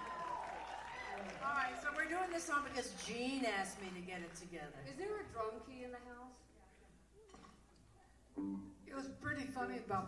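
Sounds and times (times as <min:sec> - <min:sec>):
woman talking: 0:01.4 - 0:06.9.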